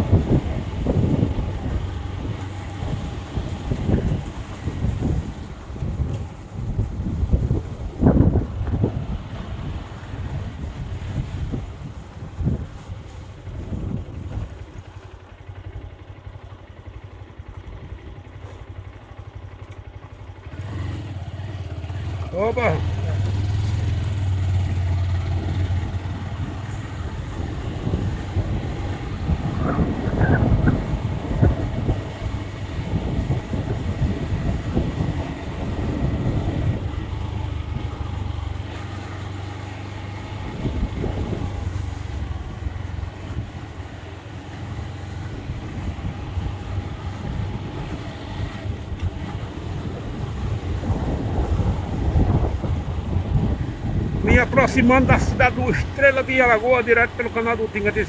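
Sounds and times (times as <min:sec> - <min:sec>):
wind noise: 0:00.0 - 0:15.0, 0:22.0 - 0:43.6, 0:45.2 - 0:56.8
road noise: 0:00.0 - 0:58.0
vehicle engine hum: 0:00.0 - 0:58.0.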